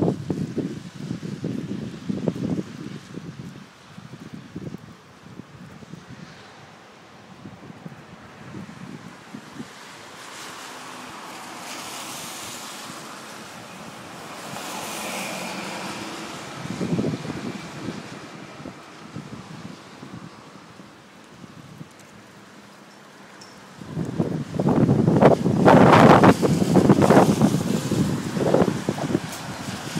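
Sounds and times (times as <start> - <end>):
storm wind gusting: 0.0 - 22.3, 23.7 - 29.9
wind buffeting microphone: 0.0 - 22.5, 23.6 - 29.9.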